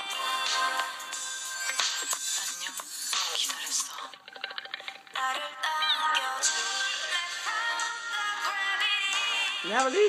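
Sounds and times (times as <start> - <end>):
women singing over backing track: 0.0 - 1.3, 5.2 - 10.0.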